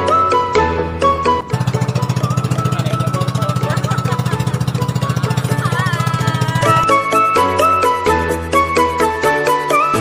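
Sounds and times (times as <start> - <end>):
boat engine chugging: 0.4 - 7.0.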